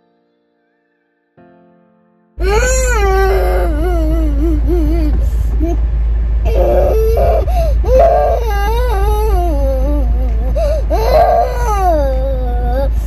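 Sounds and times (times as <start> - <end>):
young child crying and wailing: 2.4 - 5.8, 6.5 - 13.0
car interior hum: 2.4 - 13.0.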